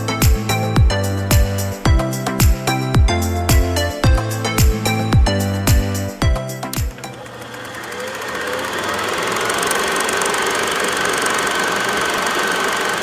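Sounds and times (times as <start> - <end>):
music with steady beat: 0.0 - 7.1
film projector ticking: 6.4 - 13.0.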